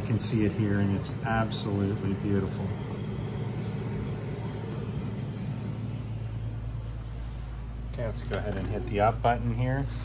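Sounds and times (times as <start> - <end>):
inkjet printer humming and whirring: 0.0 - 10.0.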